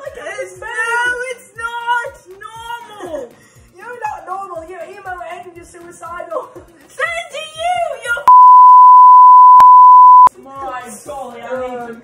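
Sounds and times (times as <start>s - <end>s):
high-pitched censor bleep: 8.3s - 10.3s.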